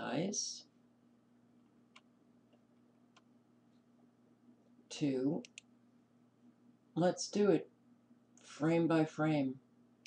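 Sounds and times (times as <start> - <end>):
faint steady hum: 0.0 - 10.0
computer mouse clicks: 5.4 - 5.7.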